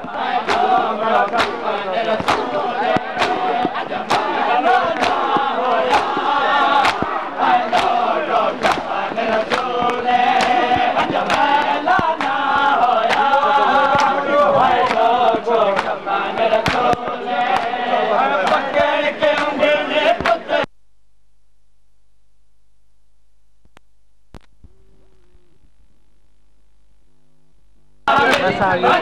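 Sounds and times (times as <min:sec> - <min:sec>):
men chanting a lament: 0:00.0 - 0:20.7, 0:28.1 - 0:29.0
hands slapping chests: 0:00.1 - 0:17.8, 0:18.4 - 0:20.5.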